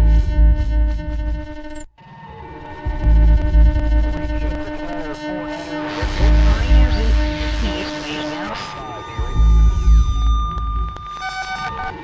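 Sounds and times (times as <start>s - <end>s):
deep bass throb: 0.0s - 1.2s, 2.9s - 4.7s, 5.9s - 8.4s, 9.2s - 11.0s
steady hum drone: 2.7s - 11.0s
warbling electronic squiggles: 2.7s - 12.0s.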